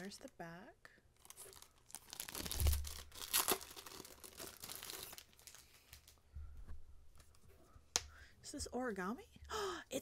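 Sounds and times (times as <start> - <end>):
packaging crinkling: 1.2 - 6.2.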